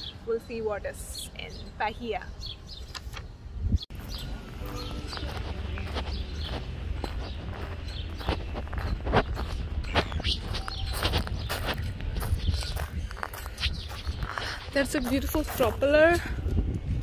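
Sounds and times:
steady low rumble: 3.5s - 17.0s
footsteps on gravel: 3.9s - 16.4s.

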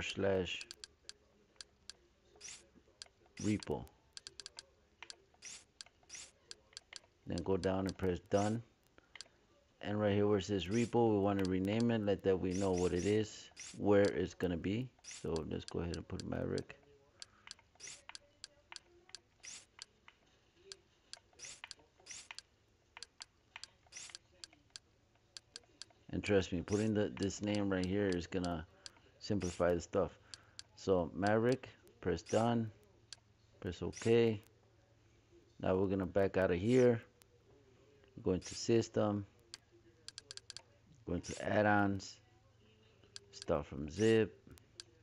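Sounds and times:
scratchy clicks: 0.6s - 9.3s, 10.6s - 14.2s, 15.0s - 26.0s, 26.7s - 30.8s, 32.3s - 33.3s, 39.5s - 40.6s.

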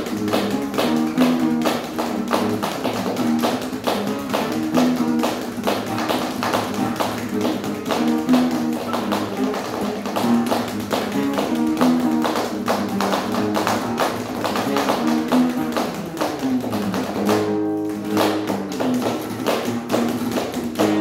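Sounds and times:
acoustic guitar strumming: 0.0s - 21.0s
drumsticks tapping percussion: 0.0s - 21.0s.

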